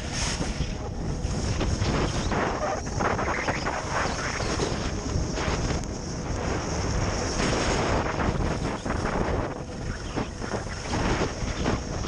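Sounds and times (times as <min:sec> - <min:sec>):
skis scraping over snow: 0:00.0 - 0:12.0
wind rushing over microphone: 0:00.0 - 0:12.0.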